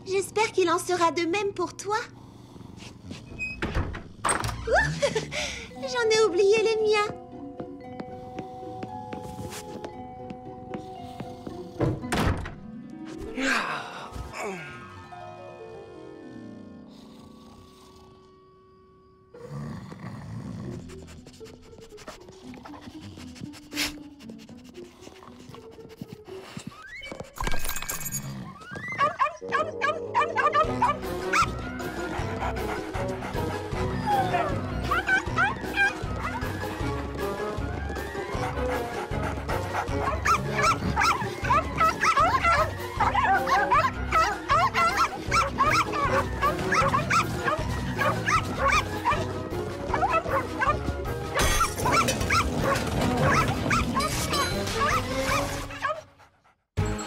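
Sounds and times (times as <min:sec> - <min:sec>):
cartoon background music: 0:04.6 - 0:19.4, 0:20.7 - 0:27.3, 0:28.3 - 0:57.0
puppies yipping and barking: 0:28.5 - 0:56.2.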